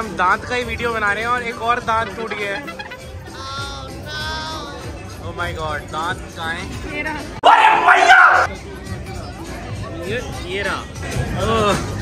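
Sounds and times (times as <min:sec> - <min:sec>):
background music: 0:00.0 - 0:12.0
people laughing: 0:01.8 - 0:03.3.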